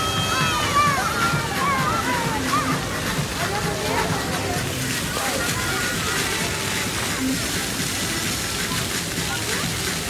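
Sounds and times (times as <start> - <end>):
fountain jets splashing: 0.0 - 10.0
music: 0.0 - 10.0
voices: 0.0 - 10.0.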